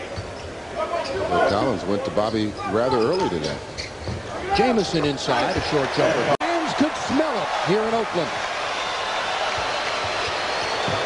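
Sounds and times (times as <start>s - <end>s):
crowd cheering: 4.4s - 11.0s.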